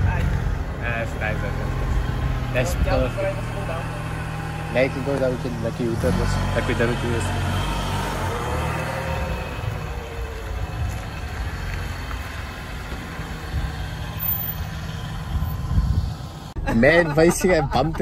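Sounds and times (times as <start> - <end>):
car engine running at low revs: 0.0 - 16.6.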